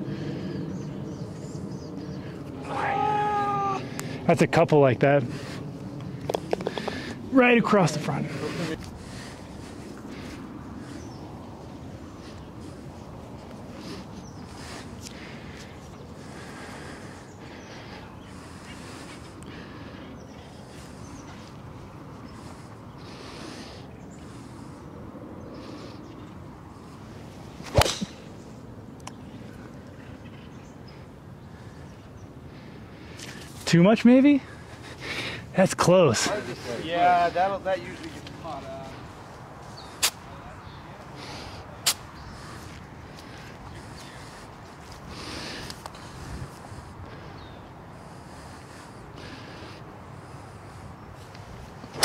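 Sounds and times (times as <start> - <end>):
low outdoor background: 0.0 - 52.0
golf club striking ball: 27.6 - 28.3.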